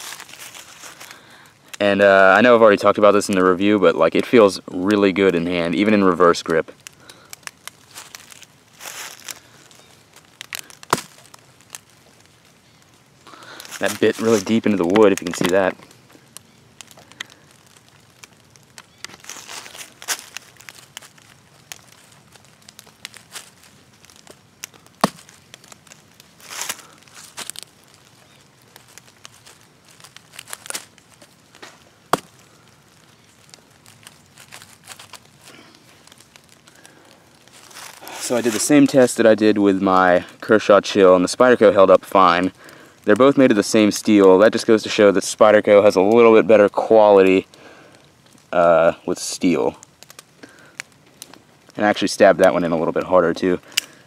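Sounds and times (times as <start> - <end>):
crackly rustling and scraping: 0.0 - 54.0
short rustle: 37.5 - 38.8.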